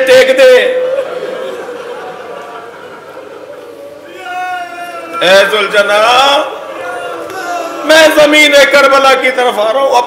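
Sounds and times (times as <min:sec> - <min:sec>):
crowd weeping and wailing: 0:00.8 - 0:05.2, 0:06.5 - 0:08.4.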